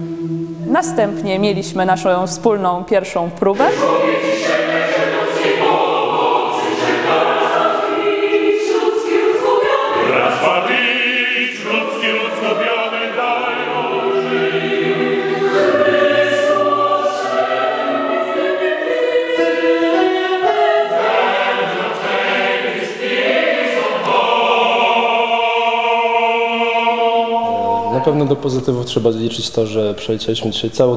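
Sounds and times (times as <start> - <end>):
choir singing choral piece: 0.0 - 2.5, 3.3 - 28.8.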